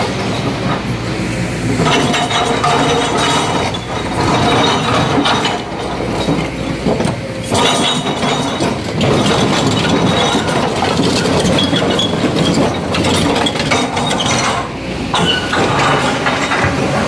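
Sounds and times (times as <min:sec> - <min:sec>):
excavator engine running: 0:00.0 - 0:17.0.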